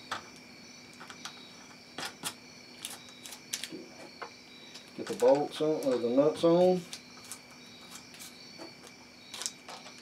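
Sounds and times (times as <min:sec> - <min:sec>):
foil wrapping clicks and crinkles: 0:02.0 - 0:03.8, 0:09.3 - 0:10.0.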